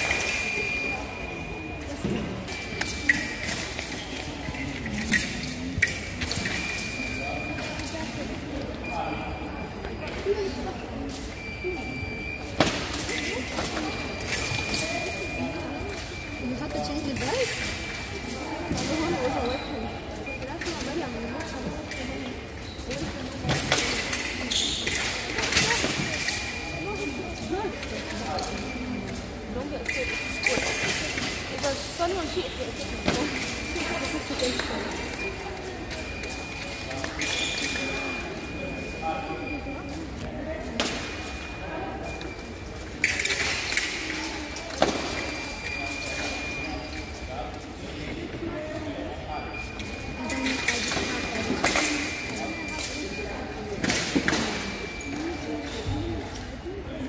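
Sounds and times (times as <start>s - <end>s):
voices chattering: 0.0s - 57.0s
fencing blades clicking: 2.5s - 8.2s, 20.6s - 38.5s, 42.1s - 47.6s, 49.7s - 55.4s.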